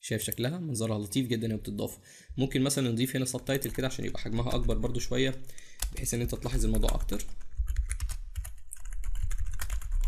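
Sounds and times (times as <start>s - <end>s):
keyboard typing: 3.4s - 10.0s.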